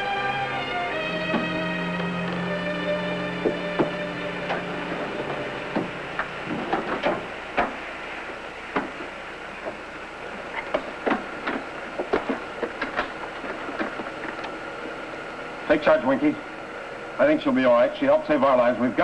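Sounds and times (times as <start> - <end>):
steady hiss: 0.0 - 19.0.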